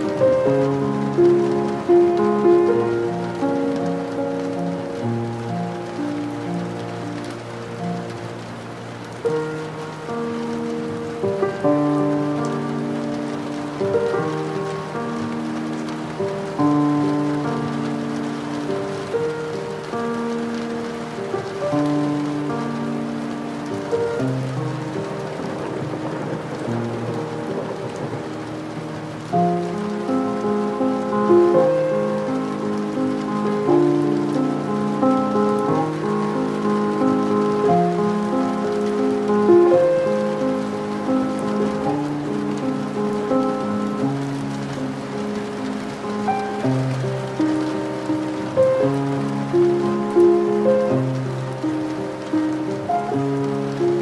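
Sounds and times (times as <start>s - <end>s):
slow classical music: 0.0s - 54.0s
steady rain falling: 0.0s - 54.0s.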